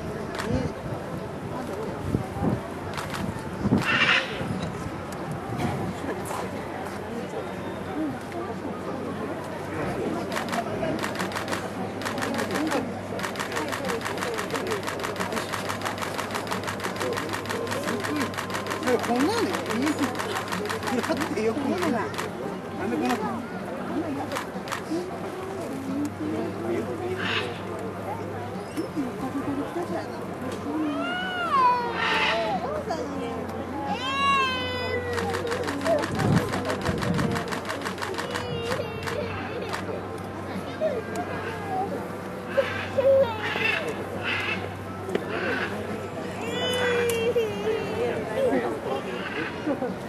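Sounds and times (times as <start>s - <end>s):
quiet voices: 0.0s - 50.0s
camera shutters clicking: 10.2s - 22.3s, 23.0s - 23.2s, 35.1s - 39.9s.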